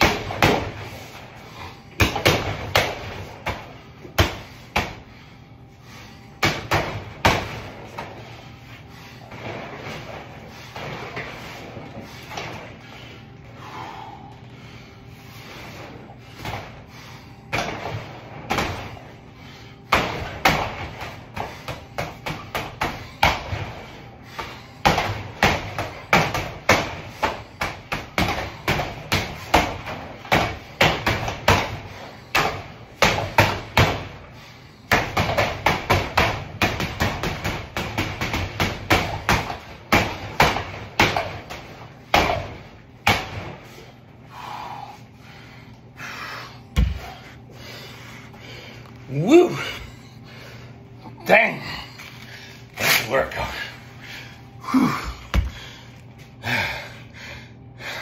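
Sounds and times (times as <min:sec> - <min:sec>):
gloves punching heavy bag: 0:00.0 - 0:01.1, 0:01.9 - 0:05.1, 0:19.9 - 0:34.3, 0:34.9 - 0:43.6.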